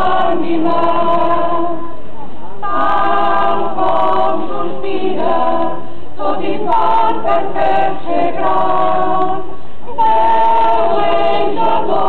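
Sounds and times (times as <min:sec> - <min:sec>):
choir singing unaccompanied: 0:00.0 - 0:12.0.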